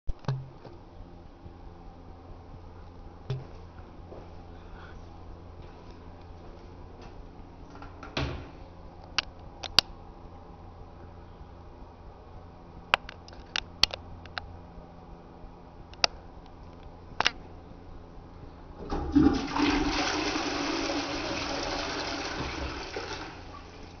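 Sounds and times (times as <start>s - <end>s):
steady low hum: 0.1s - 21.5s
sharp clicks: 9.0s - 9.9s
toilet flushing: 18.8s - 24.0s.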